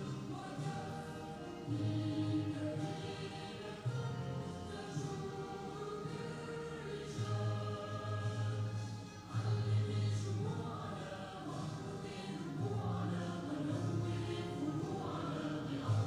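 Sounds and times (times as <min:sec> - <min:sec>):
choir singing an anthem: 0:00.0 - 0:16.0.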